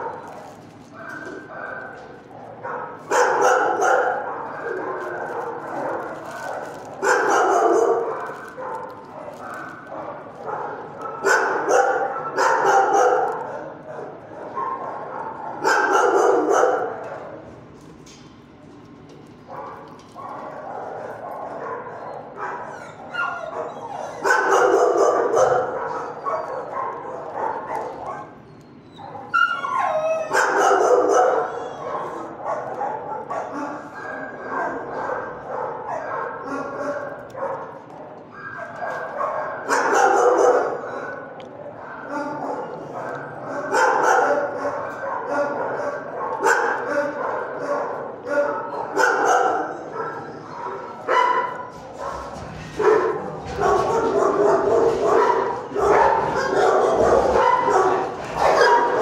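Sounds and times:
dogs barking and yipping: 0.0 - 17.4, 19.4 - 59.0.

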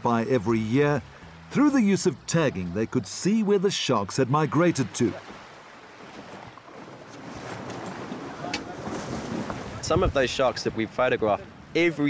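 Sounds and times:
water splashing against boat: 3.1 - 11.7.

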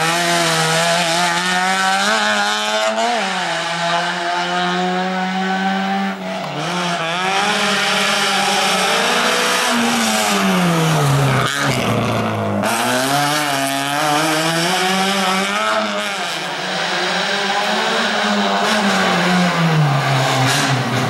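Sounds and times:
car engine revving: 0.0 - 21.0.

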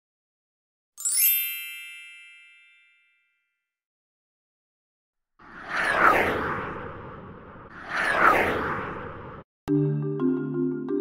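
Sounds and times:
bright bell-like chime: 1.0 - 3.6.

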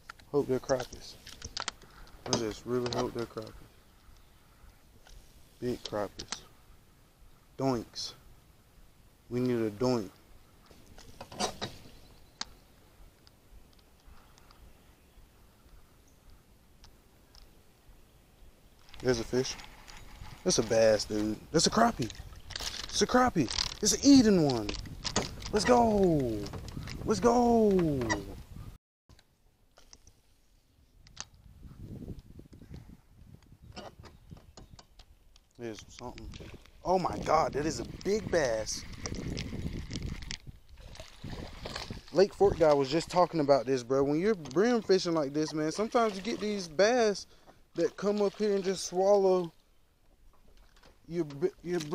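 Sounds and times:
microphone handling rumble: 19.2 - 28.8, 31.4 - 34.9, 35.7 - 42.7.

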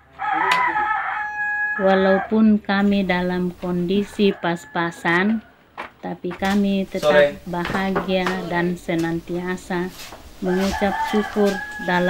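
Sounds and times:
rooster crowing: 0.0 - 2.4, 3.3 - 5.6, 10.4 - 12.0.

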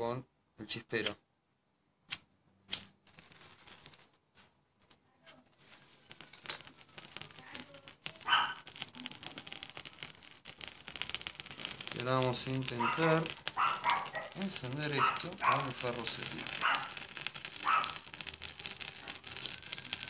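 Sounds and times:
faint crackling of burning: 2.7 - 20.0
fire steel scraping: 5.2 - 20.0.

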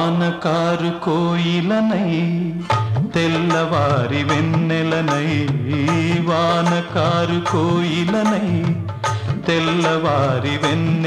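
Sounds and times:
man singing wordless notes: 0.0 - 11.0
song accompaniment: 0.0 - 11.0.

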